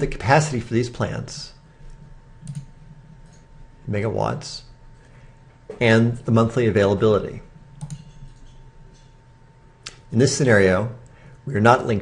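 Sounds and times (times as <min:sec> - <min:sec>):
computer mouse clicking: 0:02.4 - 0:03.4, 0:07.8 - 0:08.1.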